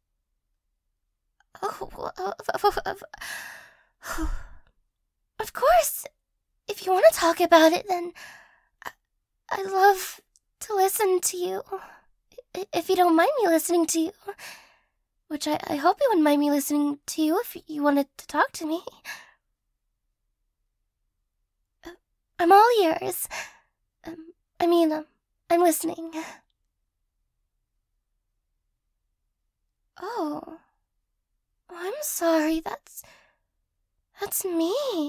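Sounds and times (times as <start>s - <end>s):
woman breathing: 3.1s - 4.8s, 8.2s - 8.8s, 14.4s - 15.0s, 23.3s - 23.8s, 33.0s - 33.5s.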